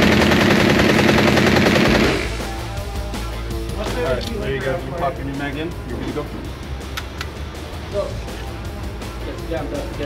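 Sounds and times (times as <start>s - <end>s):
submachine gun full-auto burst: 0.0s - 2.6s.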